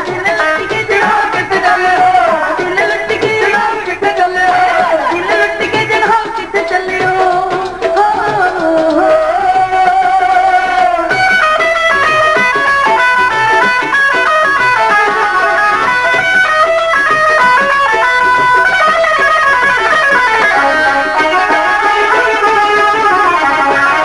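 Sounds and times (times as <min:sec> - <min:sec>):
plucked string instrument melody: 0:00.0 - 0:24.0.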